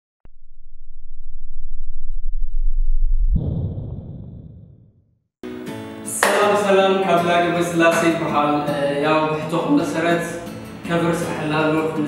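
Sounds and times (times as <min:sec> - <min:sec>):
low rumble: 0:00.2 - 0:05.0
whooshing hit: 0:02.4 - 0:05.0.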